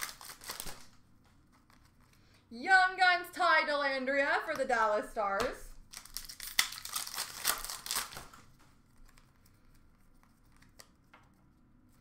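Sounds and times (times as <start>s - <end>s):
plastic wrapper tearing and crinkling: 0.0s - 2.1s, 5.8s - 11.0s.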